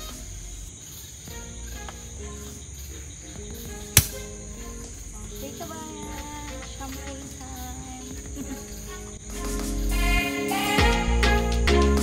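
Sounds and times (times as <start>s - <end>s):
crickets chirping: 0.0s - 11.6s
bottle cork popping: 4.0s - 4.2s.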